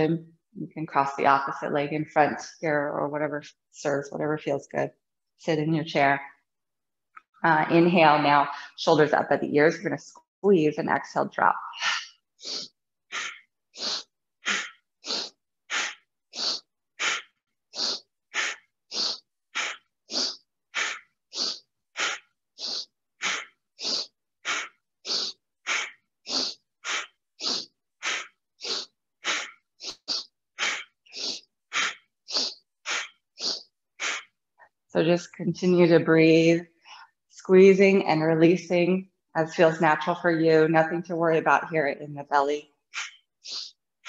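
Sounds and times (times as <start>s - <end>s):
woman breathing rapidly: 11.8s - 34.7s, 42.9s - 43.8s.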